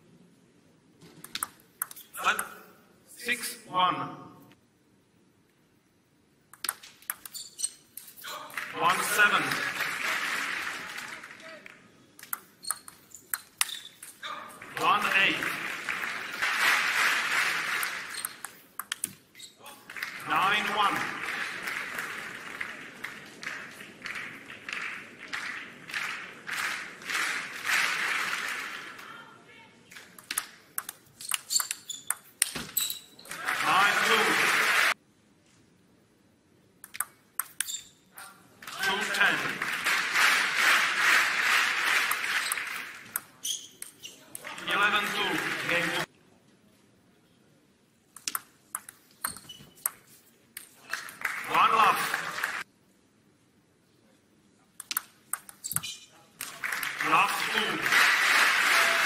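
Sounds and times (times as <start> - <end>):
table tennis ball clicking: 6.5 - 7.4, 12.2 - 13.9, 18.1 - 19.2, 30.2 - 32.6, 36.8 - 37.8, 48.2 - 50.0, 54.8 - 55.8
crowd cheering: 8.3 - 11.8, 14.5 - 18.2, 19.7 - 29.2, 33.3 - 35.0, 38.6 - 43.1, 44.4 - 46.1, 50.9 - 52.6, 56.4 - 59.0
crowd clapping in rhythm: 8.3 - 12.5, 14.5 - 19.2, 19.8 - 29.1, 33.3 - 35.0, 38.6 - 43.4, 44.4 - 46.1, 50.6 - 52.7, 56.4 - 59.0
loud shout: 57.0 - 59.0.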